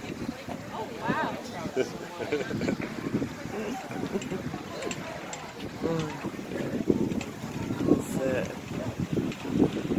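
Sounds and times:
wind buffeting microphone: 0.0s - 9.9s
people laughing: 1.5s - 4.8s.

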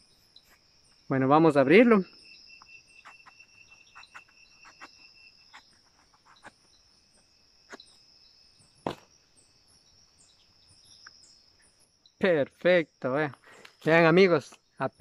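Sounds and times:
high-pitched insect calls: 0.0s - 15.0s
knife clicking and scraping rind: 3.0s - 6.7s.

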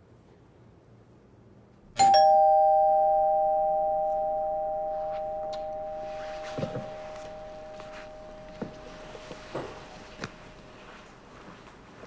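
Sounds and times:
two-note doorbell chime: 2.0s - 10.5s.

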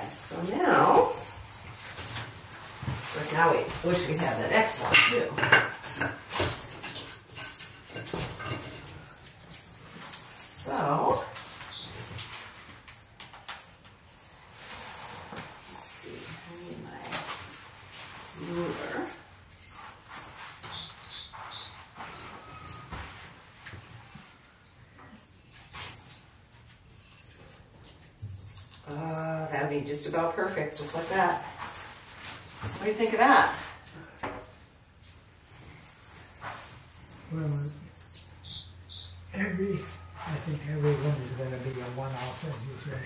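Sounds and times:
finches chirping: 0.0s - 12.1s, 12.8s - 23.0s, 24.1s - 26.2s, 27.0s - 41.3s.

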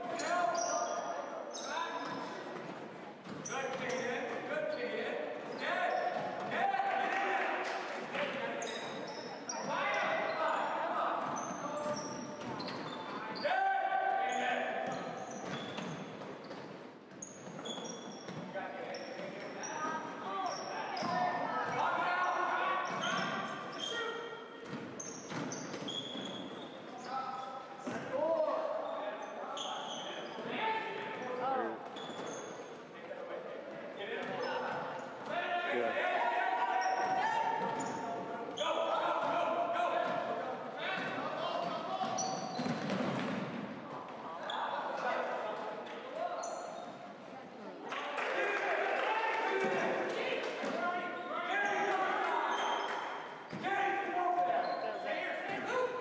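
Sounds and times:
sneaker squeaks: 0.0s - 6.5s, 8.4s - 35.5s, 36.3s - 47.3s, 50.6s - 56.0s.

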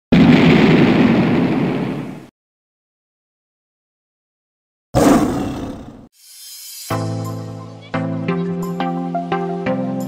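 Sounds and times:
roar sound effect: 5.0s - 6.1s.

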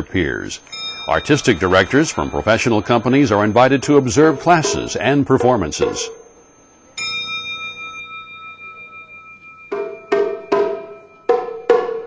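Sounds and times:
bell-like metal percussion ringing: 0.6s - 12.0s.

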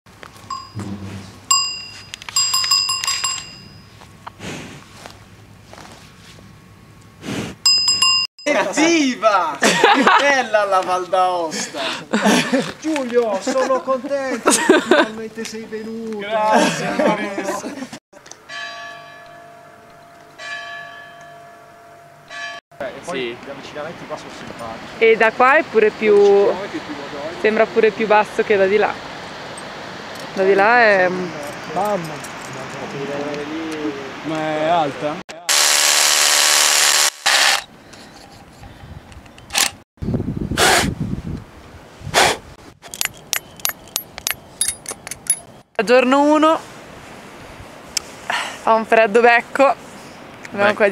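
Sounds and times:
short rushing noises: 0.8s - 1.6s
church bell tolling: 18.4s - 22.6s
hammer drill boring into rock: 35.5s - 37.7s.

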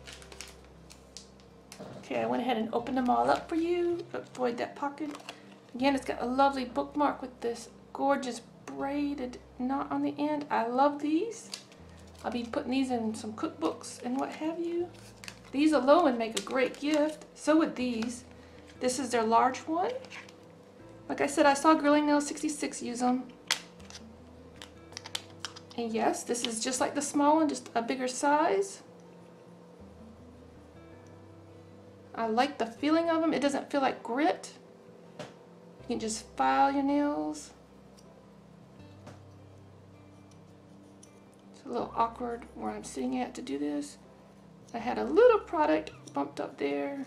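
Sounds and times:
plastic packets clicking: 0.0s - 1.5s, 5.1s - 5.5s, 11.4s - 12.3s, 15.0s - 15.5s, 24.6s - 25.8s
low steady hum: 0.0s - 47.0s
nail file and case clicking: 23.5s - 24.0s, 24.6s - 25.8s.

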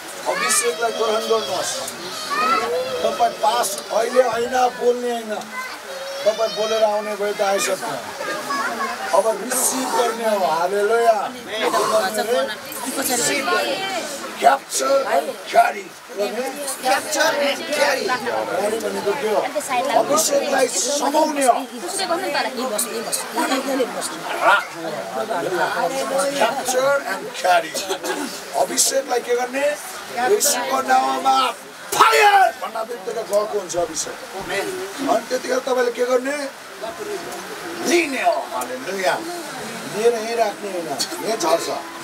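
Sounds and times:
people praying aloud: 0.0s - 42.0s.

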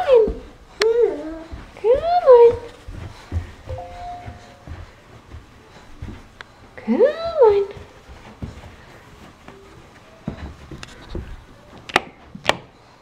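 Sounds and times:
soft thumps on carpeted stairs: 0.0s - 12.8s.

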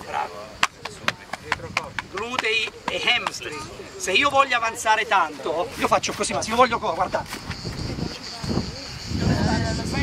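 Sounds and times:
sharp taps: 0.6s - 3.4s.

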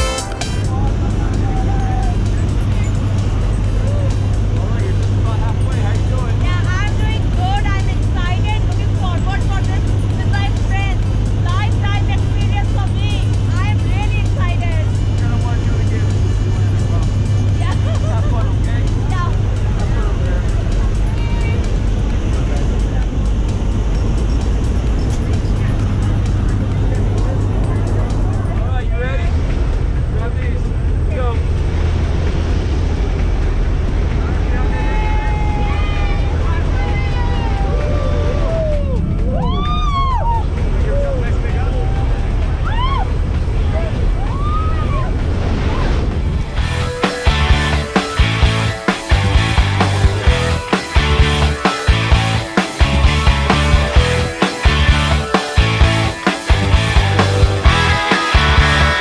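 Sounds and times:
plane engine and propeller drone: 0.0s - 44.2s
rushing air: 29.2s - 59.0s.

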